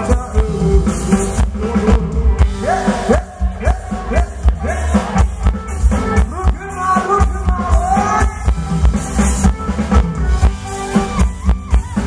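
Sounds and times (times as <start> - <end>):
dance music from a band: 0.0 - 12.0.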